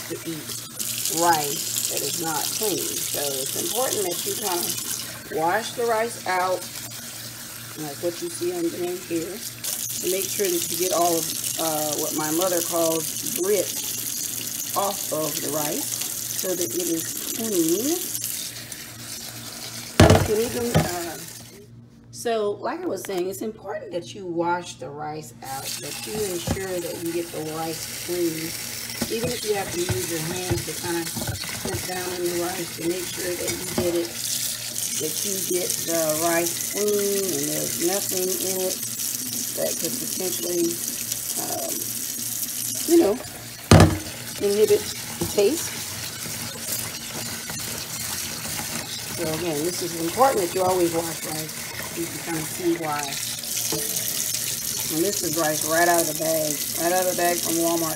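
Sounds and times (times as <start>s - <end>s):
tap water running onto rice: 0.0s - 21.6s, 25.4s - 57.9s.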